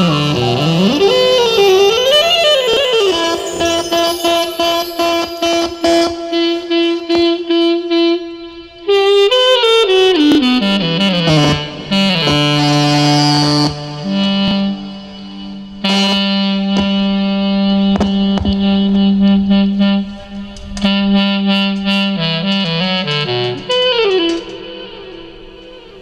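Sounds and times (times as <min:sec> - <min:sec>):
keyboard accompaniment: 0:00.0 - 0:26.0
saxophone-like lead melody: 0:00.0 - 0:26.0.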